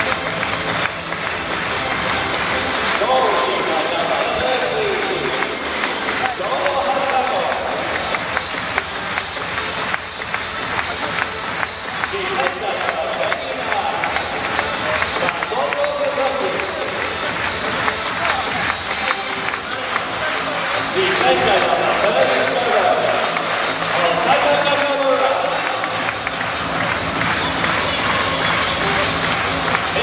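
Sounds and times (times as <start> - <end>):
crowd noise: 0.0 - 30.0
music over loudspeakers: 0.0 - 30.0.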